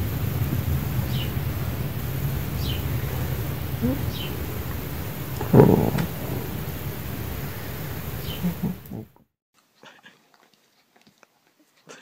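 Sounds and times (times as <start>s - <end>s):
cat purring: 0.0s - 9.1s.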